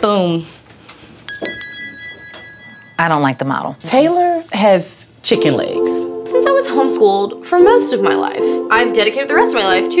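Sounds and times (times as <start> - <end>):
high steady electronic tone: 1.3 - 3.8.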